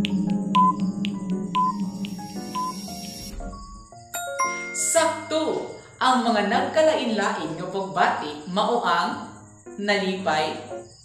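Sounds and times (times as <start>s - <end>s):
clock-like ticks: 0.0s - 3.3s
background music: 0.0s - 11.0s
short beeps: 0.6s - 0.8s, 1.6s - 3.8s.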